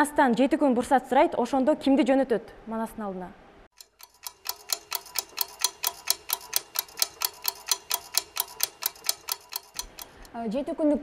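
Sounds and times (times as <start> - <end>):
clock ticking rapidly: 3.7 - 10.3.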